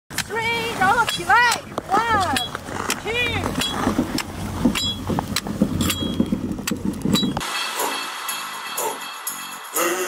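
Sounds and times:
sled runners scraping over ice: 0.3 - 7.9
jingling music: 7.4 - 10.0.

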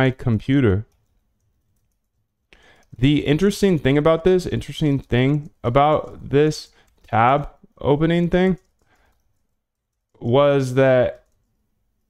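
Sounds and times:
computer clicking: 0.8 - 12.0.

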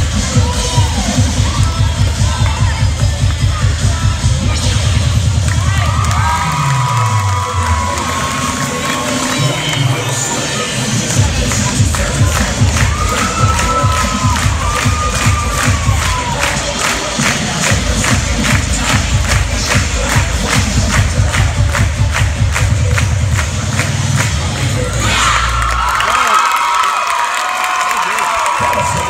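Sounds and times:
cheerleading music with pounding beat: 0.0 - 29.0
crowd cheering and screaming: 5.6 - 10.3, 12.7 - 16.6, 25.0 - 29.0.

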